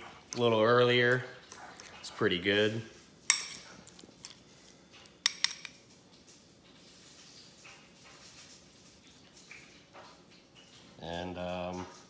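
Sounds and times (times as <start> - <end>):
metal utensil clinking on bowl: 3.3 - 4.4, 5.2 - 5.9.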